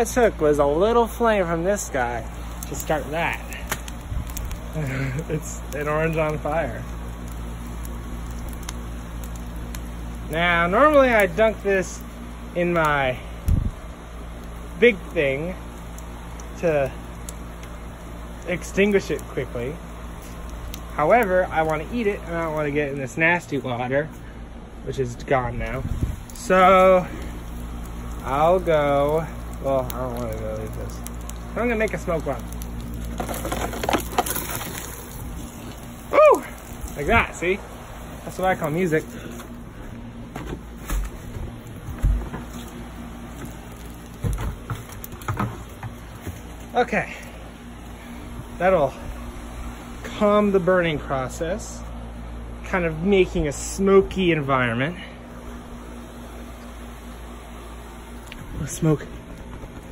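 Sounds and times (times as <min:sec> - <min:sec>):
fire crackling and popping: 0:00.0 - 0:59.9
low steady fire rumble: 0:00.0 - 0:59.9
wind rumble on microphone: 0:04.0 - 0:04.6, 0:13.4 - 0:13.8, 0:25.4 - 0:26.4.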